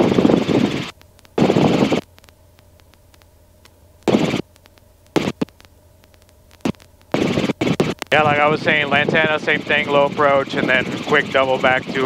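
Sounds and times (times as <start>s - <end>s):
faint steady hum: 0.0s - 12.0s
radio static hiss bursts: 0.0s - 12.0s.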